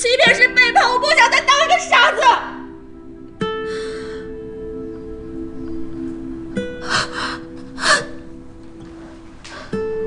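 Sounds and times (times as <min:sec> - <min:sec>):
soft background music: 0:00.0 - 0:10.0
woman gasping tearfully: 0:06.8 - 0:08.3.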